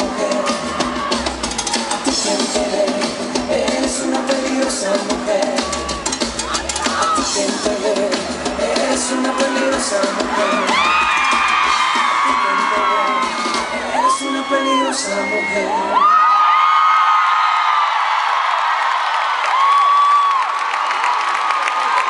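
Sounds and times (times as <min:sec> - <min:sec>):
live band playing: 0:00.0 - 0:14.8
crowd screaming and cheering: 0:00.0 - 0:22.0.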